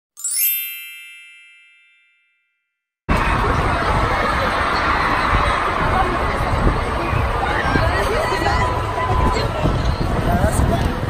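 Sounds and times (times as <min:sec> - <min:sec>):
sparkling chime: 0:00.2 - 0:02.6.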